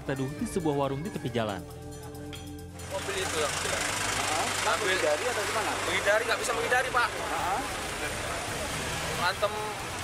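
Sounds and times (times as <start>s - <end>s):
tyres hissing on wet road: 2.8s - 10.0s.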